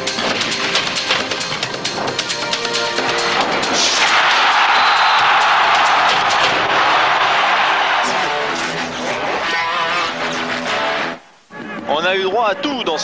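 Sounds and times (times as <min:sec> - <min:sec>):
loud rushing noise: 0:02.9 - 0:08.6.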